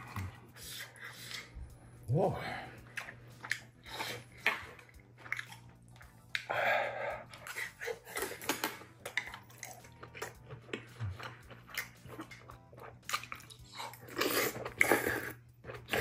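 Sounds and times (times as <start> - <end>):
wet chewing: 2.8 - 16.0.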